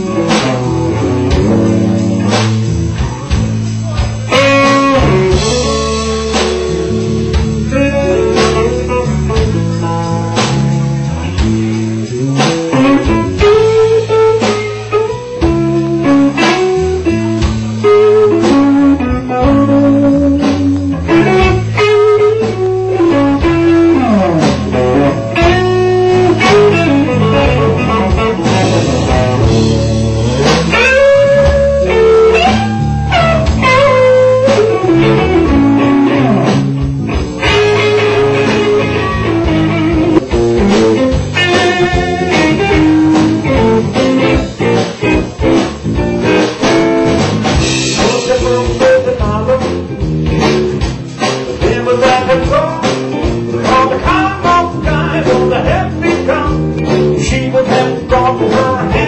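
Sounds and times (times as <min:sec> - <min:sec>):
bass guitar: 0:00.0 - 0:59.0
drums: 0:00.0 - 0:59.0
electric guitar lead with bent notes: 0:00.0 - 0:59.0.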